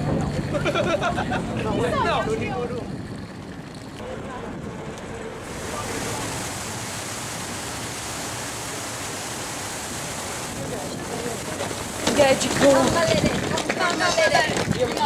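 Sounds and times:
churning sea water: 0.0 - 15.0
wind rush: 0.0 - 15.0.

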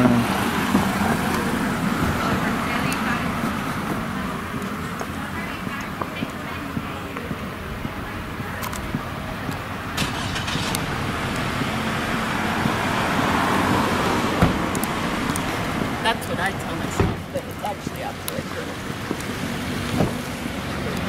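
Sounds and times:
car traffic noise: 0.0 - 21.0
vehicle passing close: 8.9 - 21.0.

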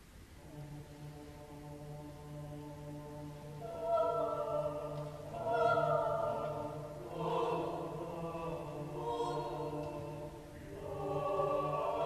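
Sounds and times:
mixed choir singing: 0.4 - 12.0.

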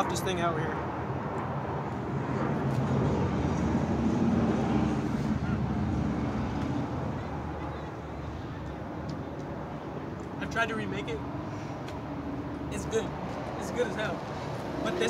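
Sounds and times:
motor vehicle passing: 1.2 - 8.6.

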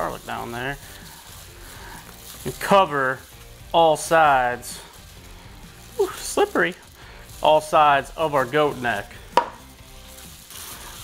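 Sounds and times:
rubbing oil into meat: 0.0 - 11.0
bowl knocking on wooden table: 9.4 - 9.6.

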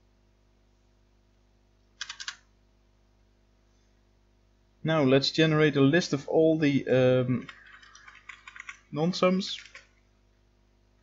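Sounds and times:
keystrokes on computer keyboard: 2.0 - 2.4, 7.4 - 10.0.

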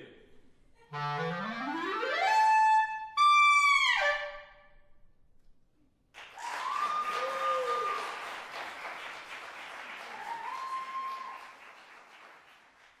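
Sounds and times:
audience applauding: 6.1 - 13.0.

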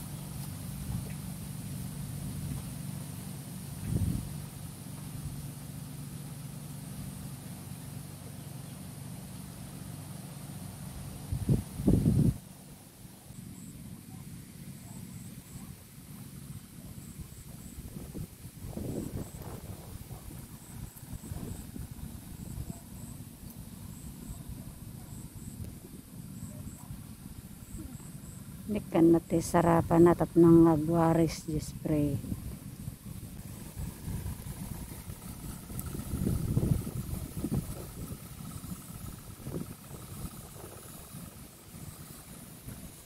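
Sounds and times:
low engine hum: 0.0 - 43.0
low rumbles: 0.0 - 43.0.

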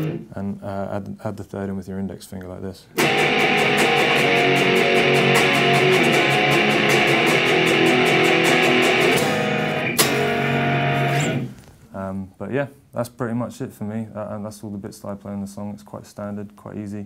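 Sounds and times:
electric guitar power chords: 0.0 - 0.3, 3.0 - 11.6.

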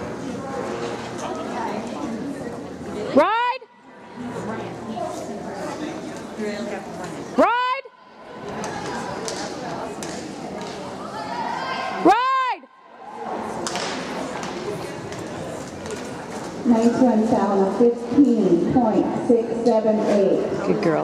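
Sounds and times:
echoing crowd chatter: 0.0 - 21.0.

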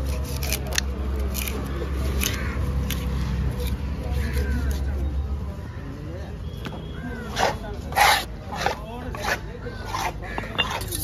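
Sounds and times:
knife scraping on chopping board: 7.3 - 11.0.

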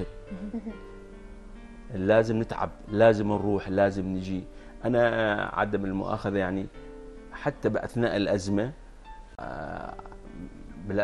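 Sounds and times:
man speaking: 1.9 - 6.7, 9.4 - 11.0.

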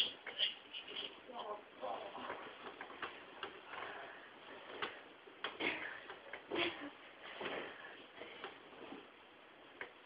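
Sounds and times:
bedding rustling: 0.8 - 10.0.

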